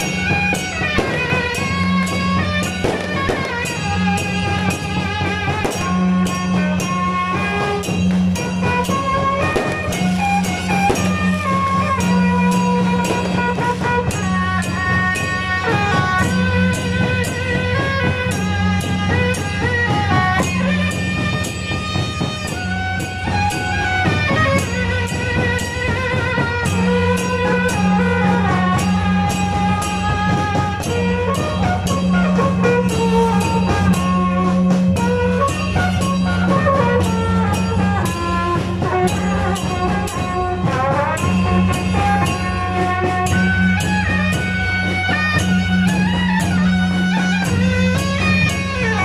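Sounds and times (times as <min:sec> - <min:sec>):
brass street band playing: 0:00.0 - 0:49.0.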